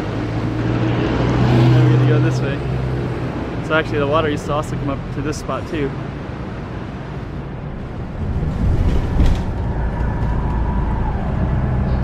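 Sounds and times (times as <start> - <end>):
bus engine and road rumble: 0.0 - 12.0
street noise: 0.0 - 12.0.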